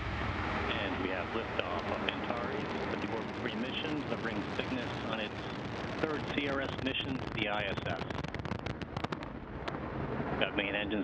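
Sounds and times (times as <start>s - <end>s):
rocket engine roaring and crackling: 0.0s - 11.0s.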